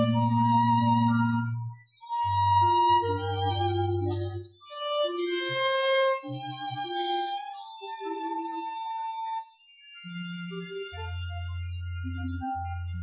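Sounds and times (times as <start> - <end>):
low accompanying instrument: 0.0 - 13.0
violin playing long notes: 0.0 - 13.0.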